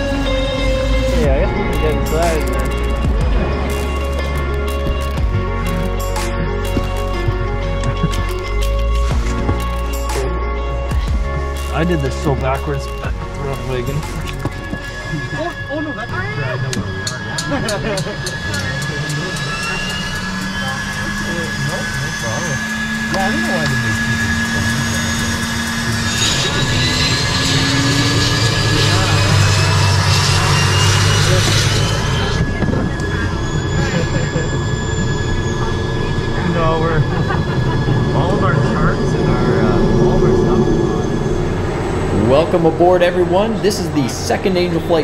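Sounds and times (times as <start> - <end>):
engine ticking: 0.0 - 26.2
low engine hum: 0.0 - 45.0
turbine whine rising in pitch: 0.0 - 45.0.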